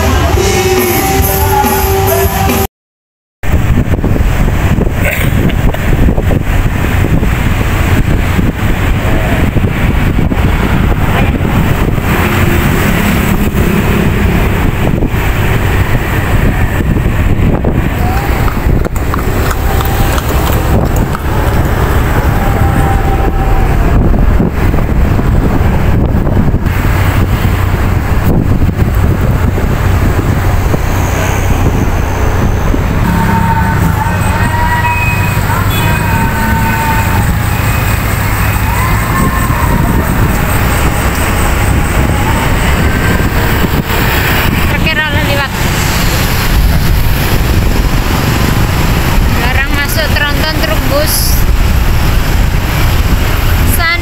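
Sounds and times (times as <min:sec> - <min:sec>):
busy road traffic: 0:00.0 - 0:02.7, 0:03.4 - 0:54.0
wind on microphone: 0:03.4 - 0:54.0
cars and motorbikes passing: 0:03.6 - 0:54.0.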